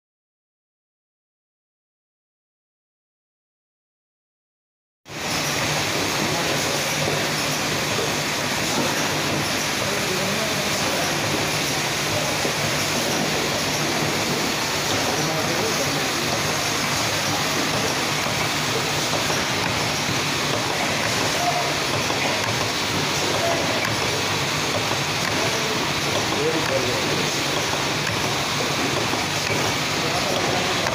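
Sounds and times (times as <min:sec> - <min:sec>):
packing machine running: 0:05.1 - 0:30.9.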